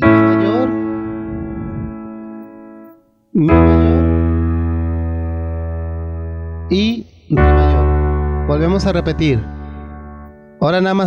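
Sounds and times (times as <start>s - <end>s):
digital piano chord: 0.0s - 11.0s.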